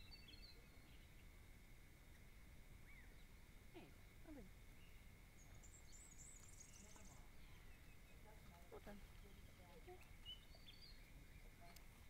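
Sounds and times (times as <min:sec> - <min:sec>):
high bird chirps: 0:09.1 - 0:11.5.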